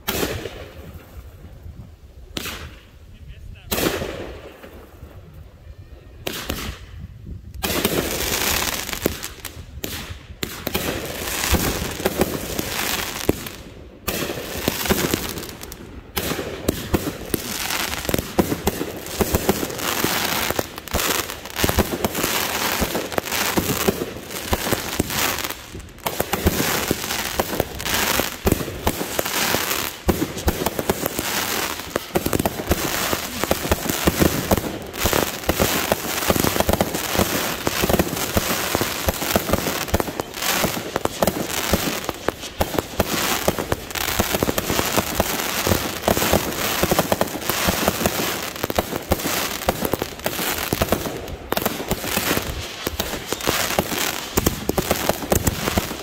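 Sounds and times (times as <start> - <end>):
fireworks bangs and crackling: 0.0 - 56.0.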